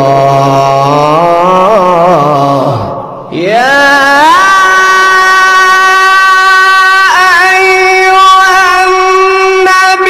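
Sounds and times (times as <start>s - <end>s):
person reciting melodically: 0.0s - 10.0s.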